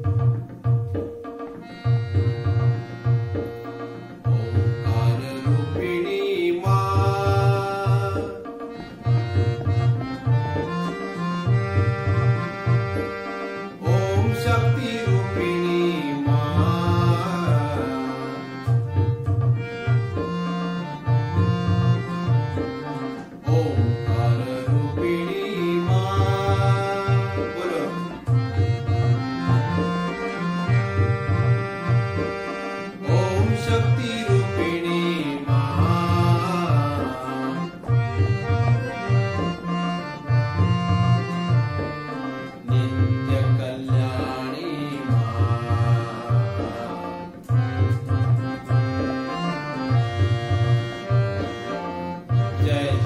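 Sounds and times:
harmonium playing a tune: 0.0s - 53.0s
tabla rhythm: 0.0s - 53.0s.

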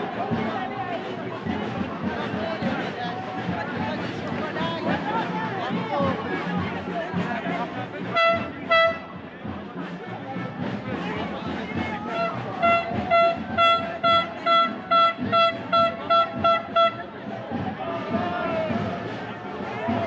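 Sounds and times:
crowd chatter: 0.0s - 20.0s
horn tooting short blasts: 8.2s - 9.2s, 12.1s - 17.0s.

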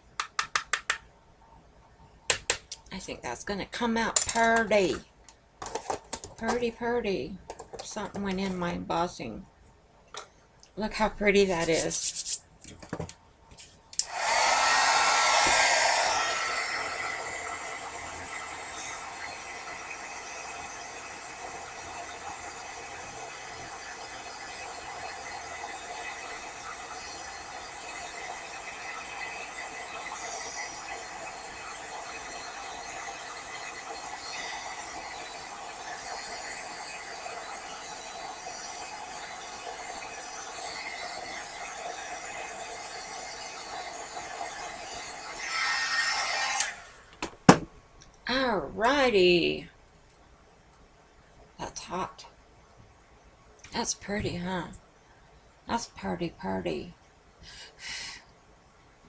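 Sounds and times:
heat tool blowing hot air: 14.0s - 47.1s.

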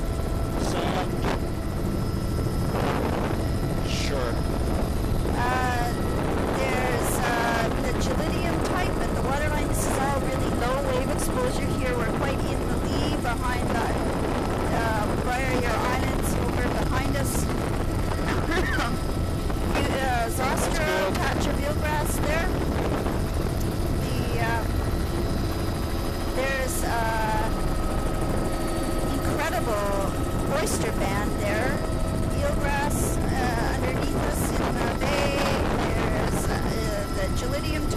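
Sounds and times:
helicopter cabin drone: 0.0s - 37.9s
muffled speech: 0.6s - 1.4s, 3.8s - 4.5s, 14.7s - 17.5s, 19.7s - 22.5s.

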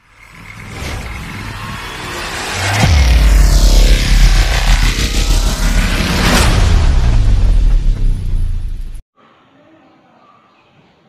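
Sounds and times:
mechanical whirring rush: 0.0s - 9.0s
deep boom: 0.4s - 9.0s.

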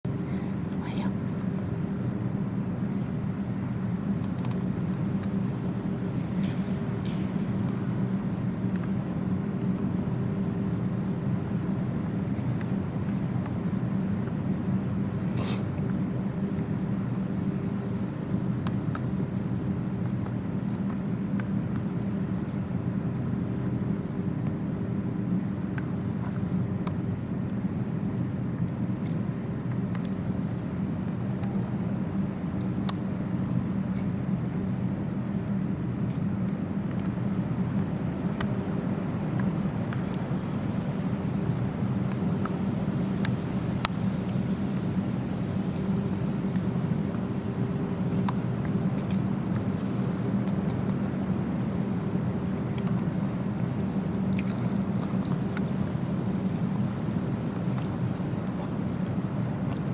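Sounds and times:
low mechanical hum: 0.0s - 59.9s.

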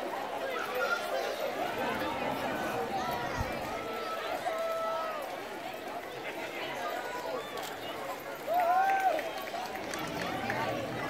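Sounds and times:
outdoor background noise: 0.0s - 11.0s
people chattering: 0.0s - 11.0s.

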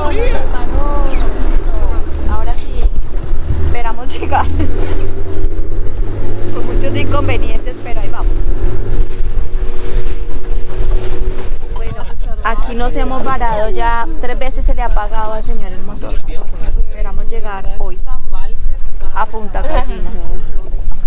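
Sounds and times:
passengers' voices: 0.0s - 10.5s, 11.6s - 21.0s
boat motor running: 0.0s - 21.0s
wind rumble on microphone: 0.0s - 21.0s.

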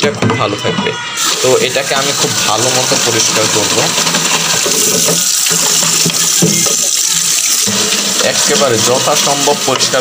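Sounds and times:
tap water running into container: 1.2s - 10.0s.

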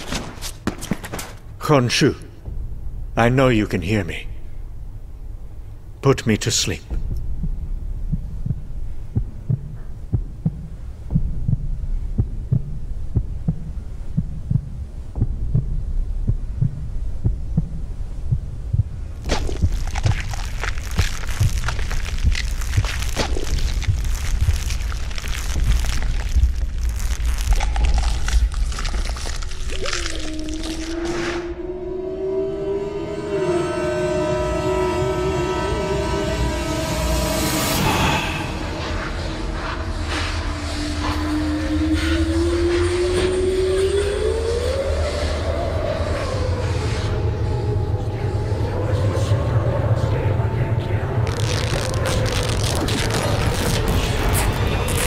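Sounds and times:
heartbeat-like pulse: 6.9s - 30.2s, 31.1s - 55.0s
drone of held tones: 30.0s - 53.8s
loud rushing noise: 32.7s - 45.3s.

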